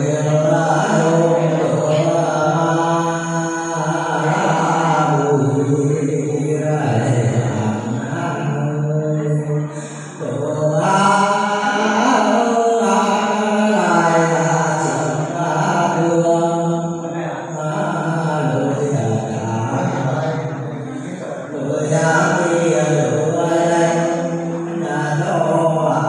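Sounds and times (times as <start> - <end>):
man singing through loudspeaker: 0.0 - 26.0.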